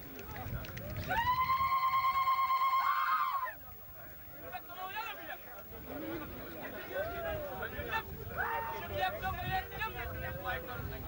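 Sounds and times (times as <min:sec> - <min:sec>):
large crowd noise: 0:00.0 - 0:11.0.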